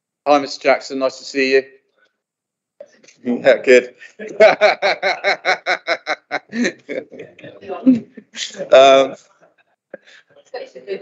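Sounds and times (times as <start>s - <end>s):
person laughing: 4.0s - 9.2s.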